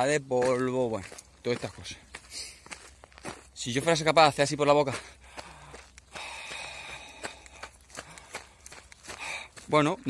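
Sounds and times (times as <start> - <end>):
runner breathing out: 5.1 - 9.7.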